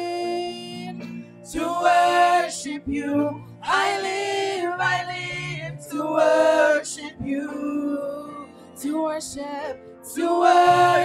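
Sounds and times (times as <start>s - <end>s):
singers singing gospel song: 0.0s - 11.0s.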